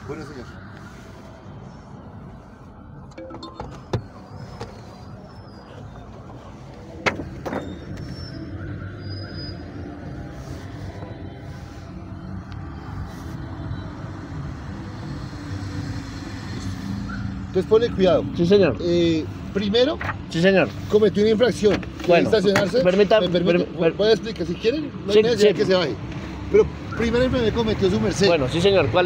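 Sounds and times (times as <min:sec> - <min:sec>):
car engine rumble: 0:00.0 - 0:23.1.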